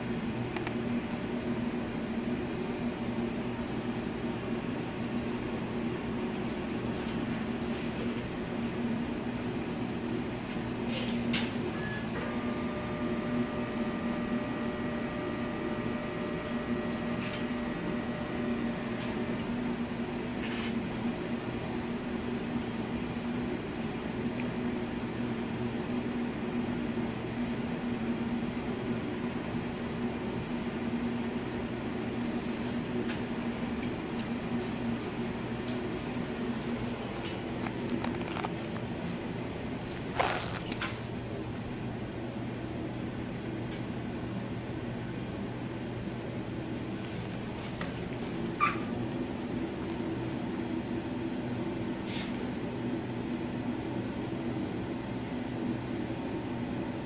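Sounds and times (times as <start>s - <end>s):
machine hum: 11.6s - 24.3s, 31.2s - 52.0s.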